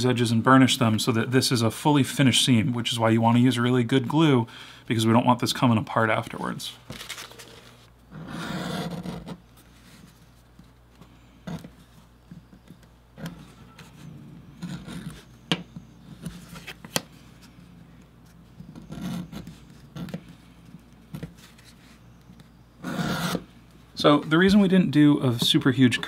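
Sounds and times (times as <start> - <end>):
edge beveler scraping leather: 22.8 - 23.4.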